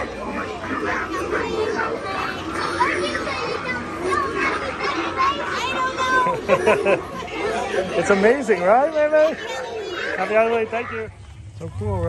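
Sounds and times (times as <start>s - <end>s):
children chattering: 0.0s - 12.0s
child laughing: 5.6s - 8.1s.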